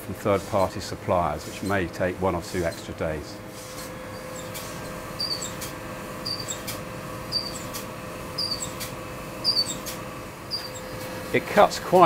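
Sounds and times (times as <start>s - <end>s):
laser cutter hum: 0.0s - 12.0s.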